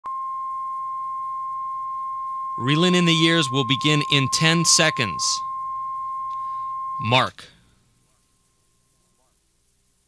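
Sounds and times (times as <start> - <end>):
steady line-up tone: 0.1 - 9.2.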